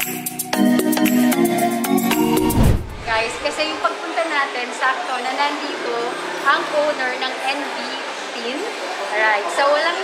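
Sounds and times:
woman talking: 0:03.0 - 0:10.0.

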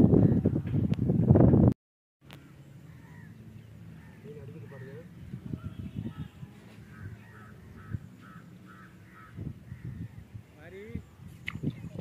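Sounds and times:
bird calling: 0:02.2 - 0:11.6.

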